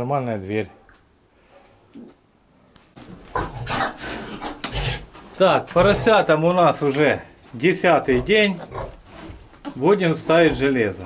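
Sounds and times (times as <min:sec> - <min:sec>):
piglets grunting: 0:03.2 - 0:06.4, 0:07.9 - 0:09.4, 0:10.1 - 0:11.0.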